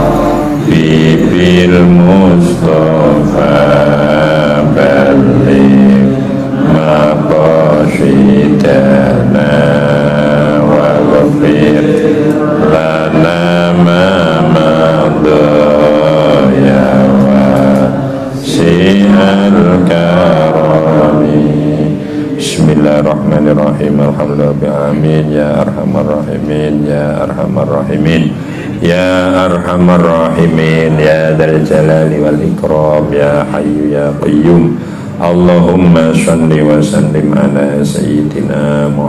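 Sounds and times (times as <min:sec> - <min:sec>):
man chanting a prayer: 0:00.0 - 0:39.0.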